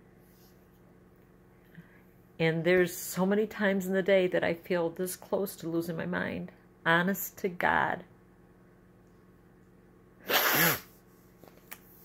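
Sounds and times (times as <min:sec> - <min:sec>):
woman sneezing: 0:10.2 - 0:10.9.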